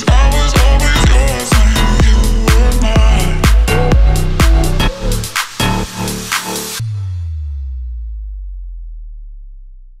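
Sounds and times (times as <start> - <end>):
deep bass note: 0.1 - 10.0.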